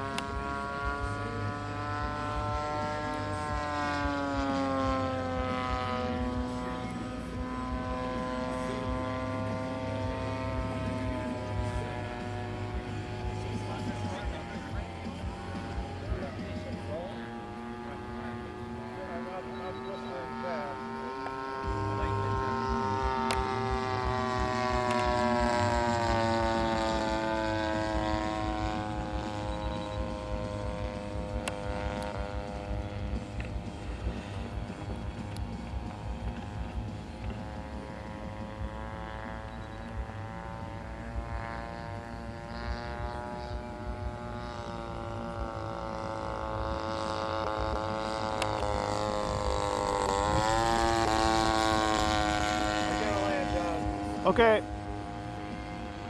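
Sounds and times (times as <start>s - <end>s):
model airplane engine droning: 0.0s - 56.0s.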